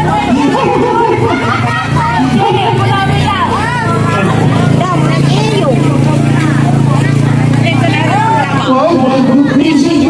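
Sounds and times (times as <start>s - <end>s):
car engine idling: 0.0s - 10.0s
people talking: 0.0s - 10.0s.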